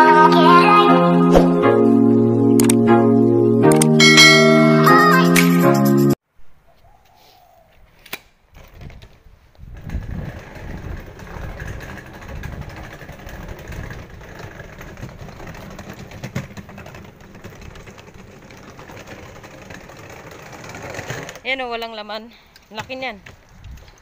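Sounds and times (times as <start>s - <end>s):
street traffic rumble: 9.2s - 24.0s.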